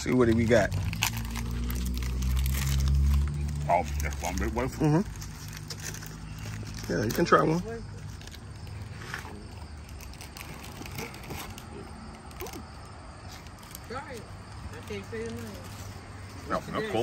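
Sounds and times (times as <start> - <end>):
foil wrapper crinkling: 0.0 - 12.6
quiet outdoor background: 0.0 - 17.0.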